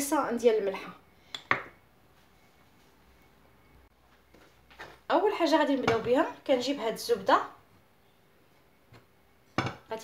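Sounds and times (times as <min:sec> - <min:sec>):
woman's voice: 0:00.0 - 0:01.0, 0:05.1 - 0:07.6.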